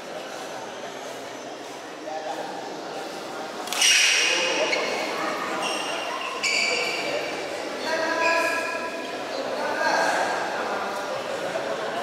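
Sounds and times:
voices around court: 0.0s - 12.0s
shoes squeaking: 3.7s - 7.1s.

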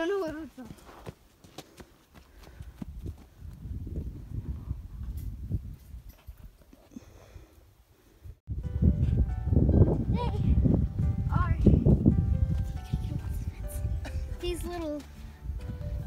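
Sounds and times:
footsteps running on dirt road: 0.0s - 4.2s, 13.9s - 16.0s
music with held notes: 8.6s - 16.0s.

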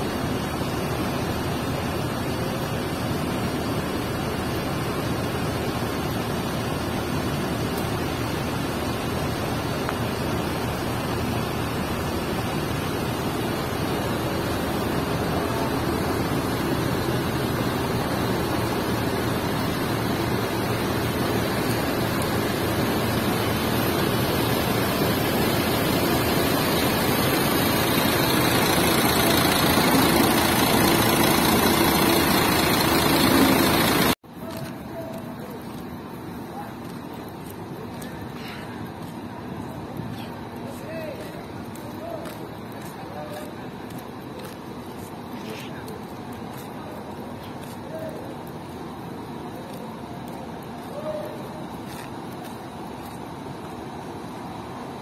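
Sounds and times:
diesel coach engine running: 0.0s - 55.0s.

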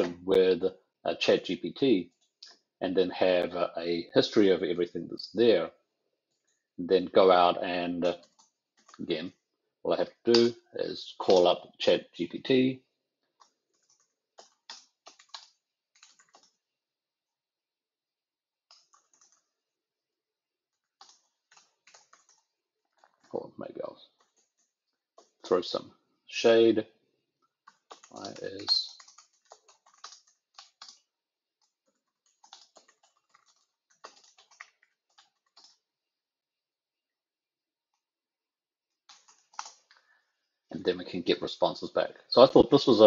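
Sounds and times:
typing on computer keyboard: 8.0s - 9.0s, 13.4s - 16.6s, 18.7s - 19.6s, 20.8s - 23.4s, 24.1s - 25.5s, 27.6s - 35.8s, 39.0s - 39.9s.

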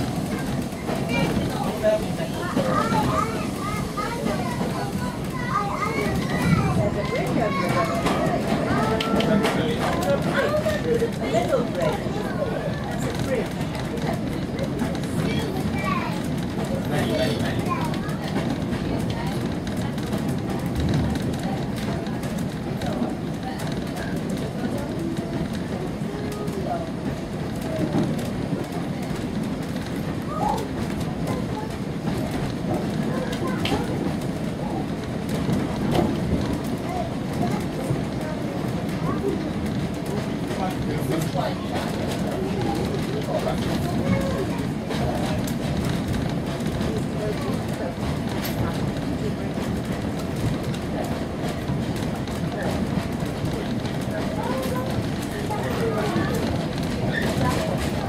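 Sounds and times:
children chattering and calling: 0.0s - 58.0s
railway carriage rumble: 0.0s - 58.0s.

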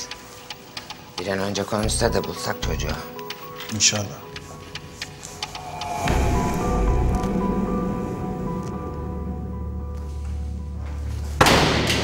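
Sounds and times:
loud whoosh hit: 5.6s - 9.3s
low sustained drone: 5.6s - 10.0s.

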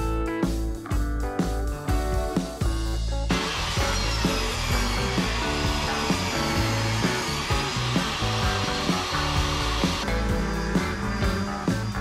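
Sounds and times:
background music: 0.0s - 12.0s
table saw cutting wood: 3.3s - 12.0s.

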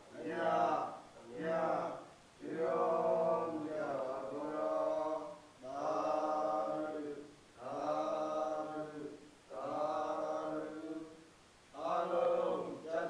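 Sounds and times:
monks chanting: 0.0s - 11.2s, 11.8s - 13.0s.

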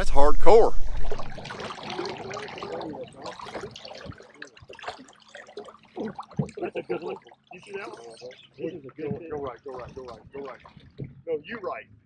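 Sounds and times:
water lapping against boat: 0.8s - 11.4s
faint voices: 2.0s - 4.5s, 6.0s - 11.8s.

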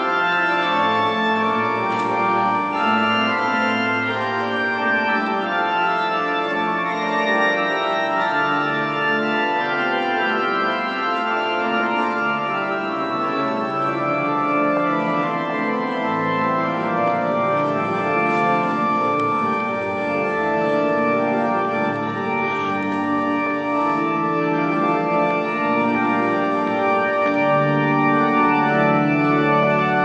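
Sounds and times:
organ chords: 0.0s - 30.0s.

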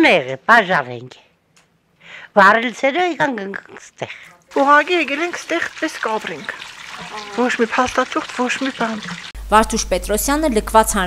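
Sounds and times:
woman talking: 0.0s - 1.3s, 2.3s - 11.0s.

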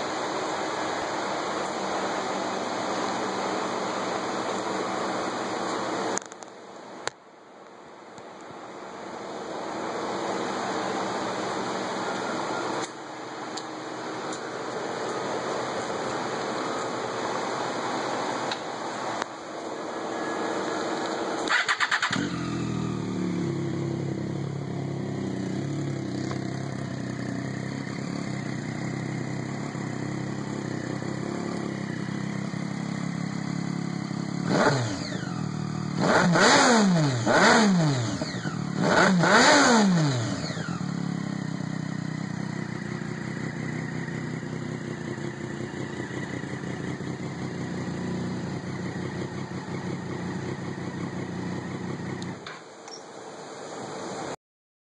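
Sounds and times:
motorcycle engine starting and idling: 9.4s - 53.4s
steady hiss: 52.5s - 54.4s.

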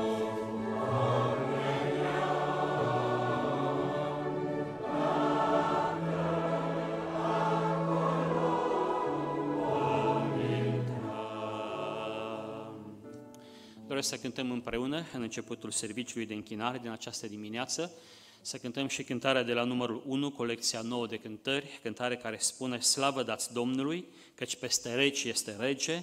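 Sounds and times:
congregation singing a hymn: 0.0s - 13.1s
grand piano accompaniment: 0.0s - 14.3s.

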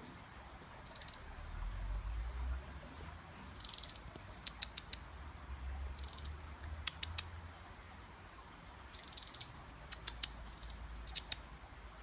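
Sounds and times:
robin chattering call: 0.8s - 1.2s, 3.5s - 5.1s, 5.9s - 7.4s, 8.9s - 11.5s.

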